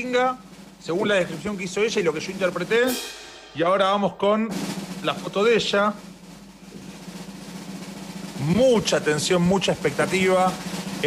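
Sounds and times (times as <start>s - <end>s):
snare drum roll: 0.0s - 11.0s.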